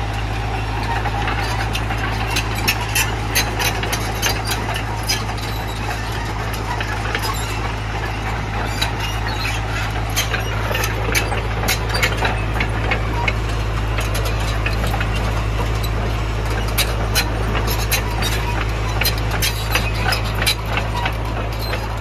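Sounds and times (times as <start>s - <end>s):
excavator diesel engine idling: 0.0s - 22.0s.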